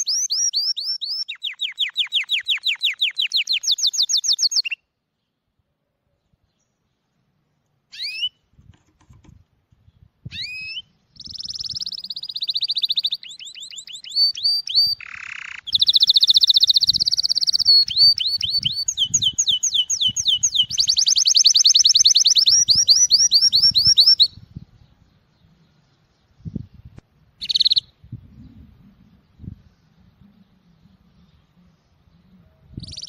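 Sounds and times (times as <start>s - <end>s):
canary singing: 0.0s - 4.9s, 7.9s - 8.4s, 10.3s - 24.5s, 27.4s - 28.0s, 32.1s - 33.0s.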